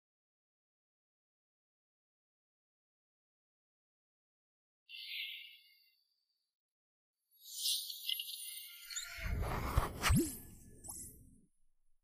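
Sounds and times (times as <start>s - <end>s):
whoosh with low rumble: 9.3s - 10.3s.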